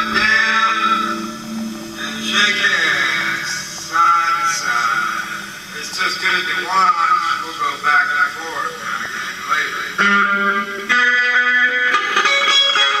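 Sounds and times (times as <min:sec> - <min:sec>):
electric guitar chords: 0:00.0 - 0:13.0.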